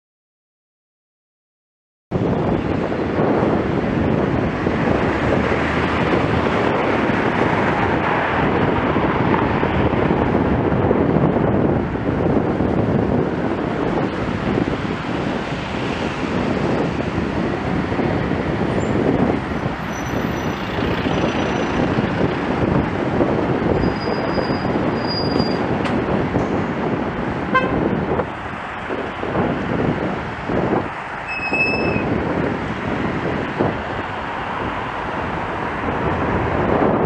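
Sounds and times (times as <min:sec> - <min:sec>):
wind rushing over microphone: 0:02.1 - 0:37.0
traffic passing on wet road: 0:02.2 - 0:37.0.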